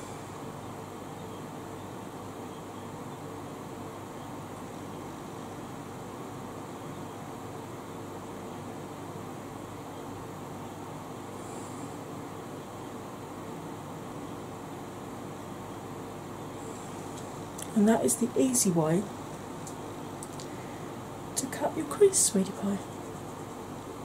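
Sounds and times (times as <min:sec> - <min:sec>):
electric fan running: 0:00.0 - 0:24.0.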